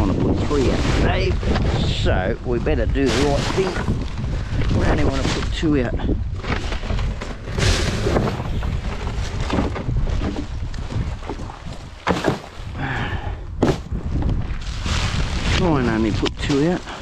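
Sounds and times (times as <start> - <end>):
wind rumble on microphone: 0.0 - 17.0
knocks against bins: 12.0 - 12.5.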